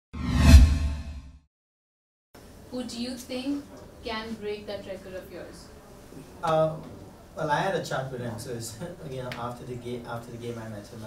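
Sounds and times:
whoosh with deep low boom: 0:00.2 - 0:01.4.

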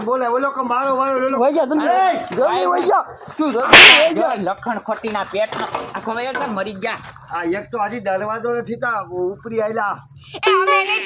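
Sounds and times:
voices: 0:00.0 - 0:11.0
loud sharp smack: 0:03.7 - 0:04.2.

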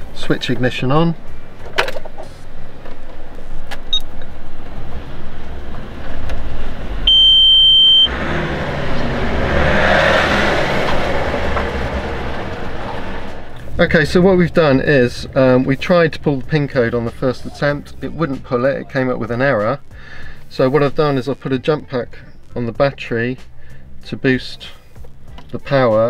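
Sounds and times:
high electronic beep: 0:07.1 - 0:08.1
rushing noise: 0:08.0 - 0:15.7.

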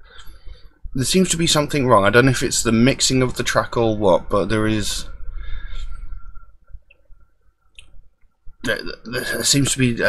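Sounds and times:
man talking: 0:01.0 - 0:05.2, 0:08.6 - 0:10.0.

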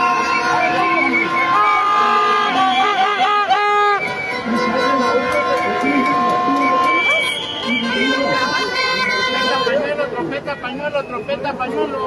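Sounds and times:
plastic horns blowing: 0:00.0 - 0:10.0
crowd voices: 0:00.0 - 0:12.0.

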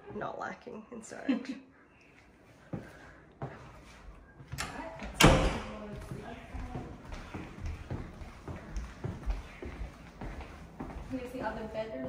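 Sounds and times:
footsteps on timber floor: 0:02.6 - 0:12.0.

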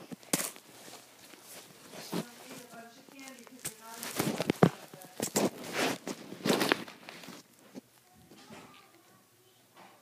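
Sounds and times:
rustling and scraping handling noise: 0:00.0 - 0:09.2.

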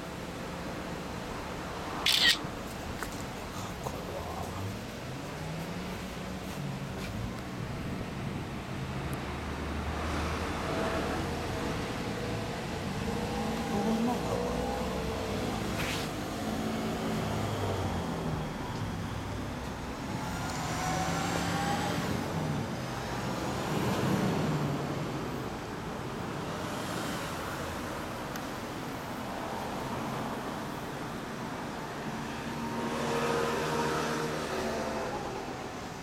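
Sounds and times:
street traffic passing: 0:00.0 - 0:36.0
background voices: 0:03.1 - 0:05.6.

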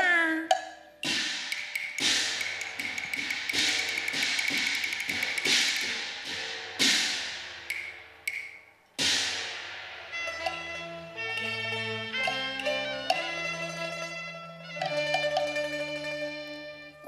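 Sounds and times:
cymbals and gong crashing: 0:01.0 - 0:08.2, 0:09.0 - 0:14.2.

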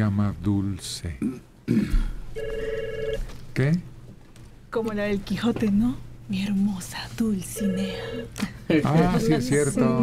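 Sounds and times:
desk telephone ringing: 0:02.4 - 0:03.3, 0:07.6 - 0:09.4.

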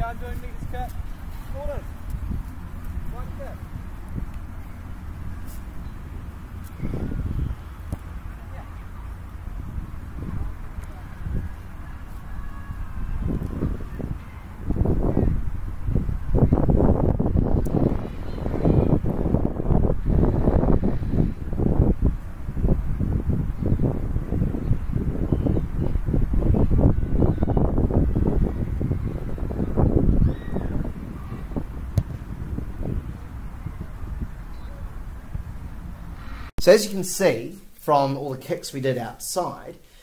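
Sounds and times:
wind buffeting microphone: 0:00.0 - 0:36.5.

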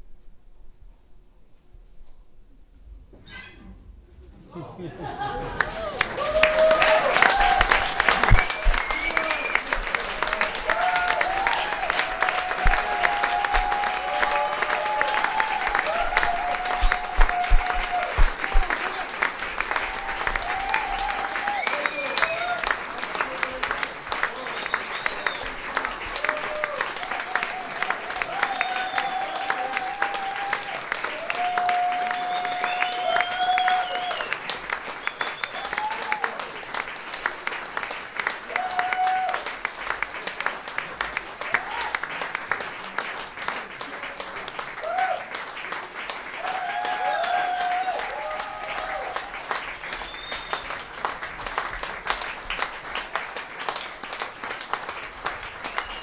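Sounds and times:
audience clapping: 0:04.9 - 0:56.0.

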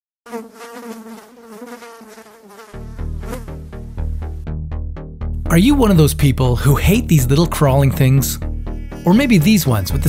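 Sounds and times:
fly buzzing: 0:00.3 - 0:04.1, 0:08.4 - 0:10.0
deep bass pulses: 0:02.8 - 0:10.0.

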